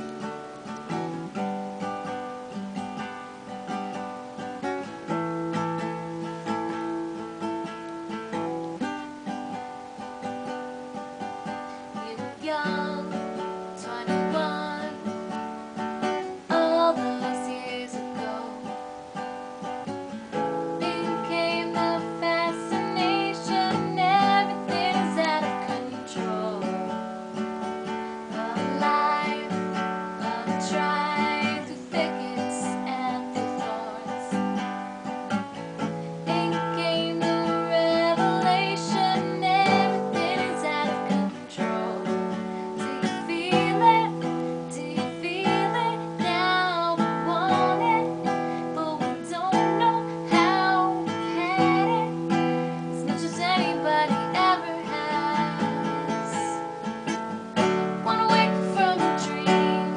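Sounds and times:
acoustic guitar strumming: 0.0s - 59.9s
woman singing: 0.0s - 59.9s.

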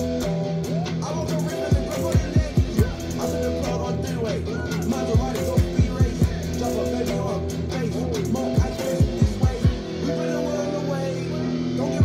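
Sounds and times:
electric guitar: 0.0s - 12.0s
hip-hop beat: 0.0s - 12.0s.

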